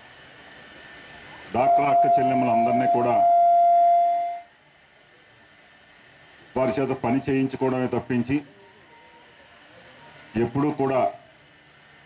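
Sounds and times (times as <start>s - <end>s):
faint hiss: 0.0s - 12.0s
microphone feedback ring: 1.6s - 4.5s.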